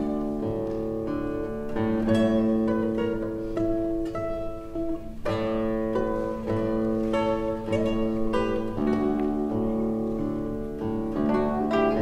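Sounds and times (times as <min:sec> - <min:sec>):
classical guitar fingerstyle: 0:00.0 - 0:12.0.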